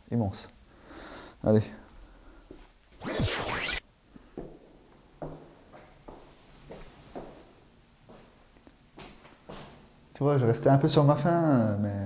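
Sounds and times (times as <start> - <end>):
static burst with falling sweep: 3.0 - 3.8.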